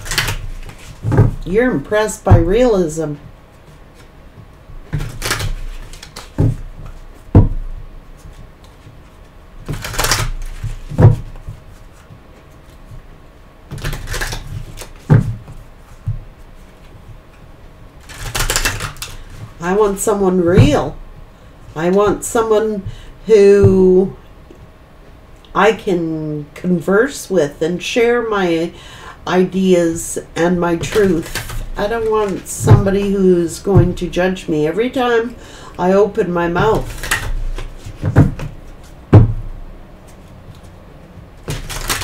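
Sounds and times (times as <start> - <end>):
cards being shuffled: 0.0 - 1.5, 4.9 - 7.2, 8.2 - 13.0, 13.7 - 17.0, 18.0 - 20.0, 30.8 - 33.2, 36.6 - 39.0, 41.4 - 42.0
dull knocks: 38.0 - 39.6.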